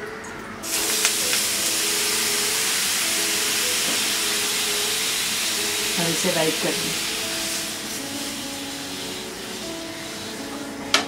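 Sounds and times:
water sizzling on hot pan: 0.6 - 11.0.

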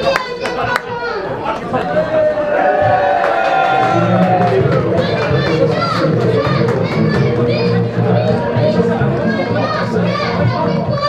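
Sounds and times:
crowd chattering and calling out: 0.0 - 11.0
children's high voices: 3.9 - 11.0.

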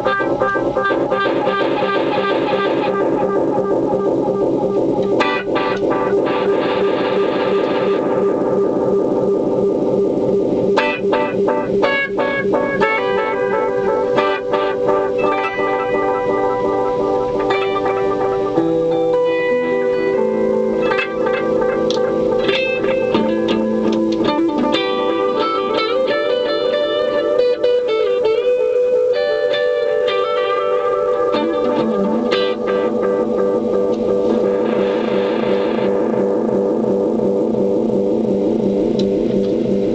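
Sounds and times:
guitar through delay pedal: 0.0 - 39.9.

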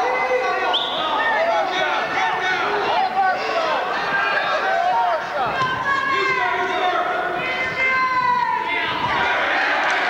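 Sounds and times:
spectators yelling: 0.0 - 10.0.

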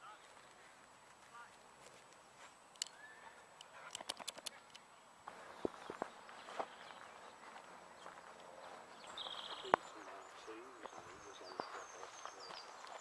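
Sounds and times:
faint outdoor ambience: 0.0 - 13.0
small clicks: 3.6 - 4.8.

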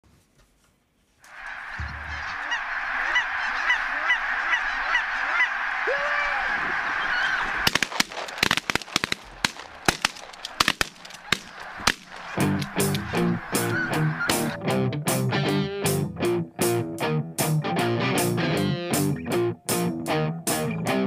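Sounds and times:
geese honking: 1.2 - 14.8
sharp cracks: 6.7 - 13.6.

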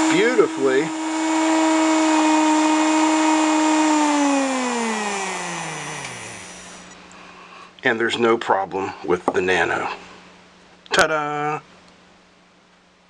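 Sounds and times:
small electric motor whining: 0.0 - 7.0.

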